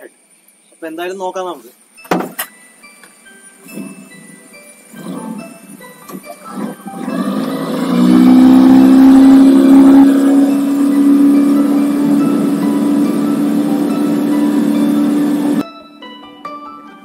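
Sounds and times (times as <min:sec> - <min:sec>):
outboard motor speeding up: 0:05.0 - 0:05.6, 0:06.5 - 0:15.6.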